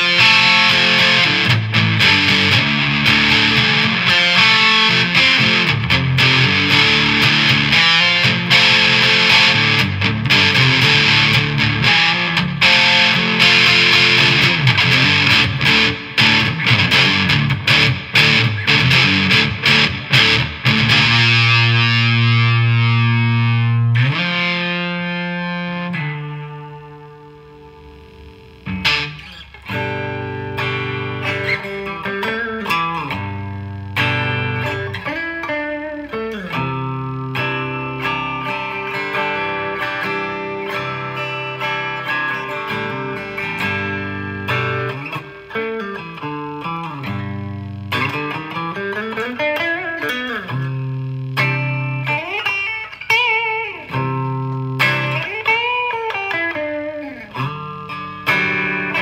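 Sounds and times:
electric guitar riffs and leads: 0.0s - 59.0s
fuzzed electric guitar chord: 0.0s - 59.0s.

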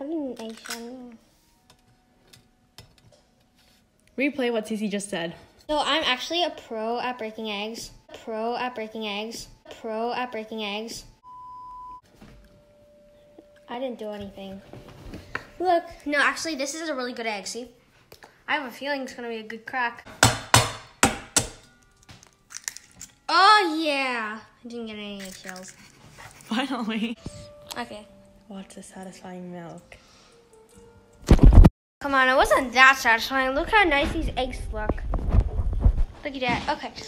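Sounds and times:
egg knocking on metal bowl: 20.1s - 21.7s.

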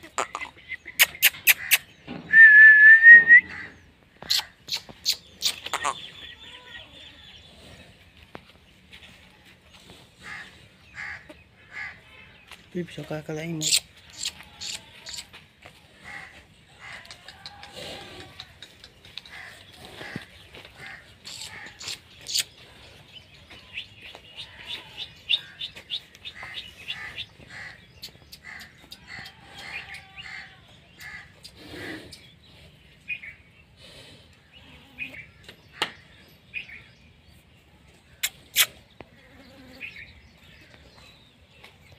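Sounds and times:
small birds chirping: 0.0s - 2.3s, 3.4s - 41.9s.

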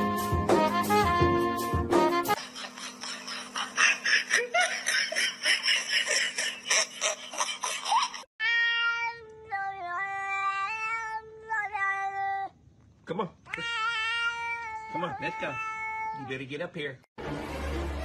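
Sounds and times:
cat yowling: 13.5s - 16.3s.

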